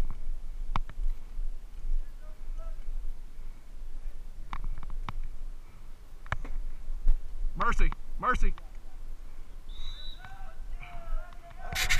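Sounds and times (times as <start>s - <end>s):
distant voices calling out: 7.5s - 11.9s.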